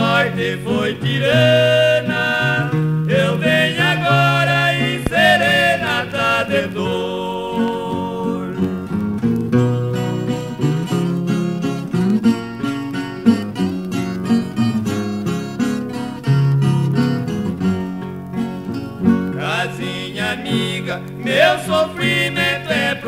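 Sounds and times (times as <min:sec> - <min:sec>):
plucked acoustic guitars: 0:00.0 - 0:23.0.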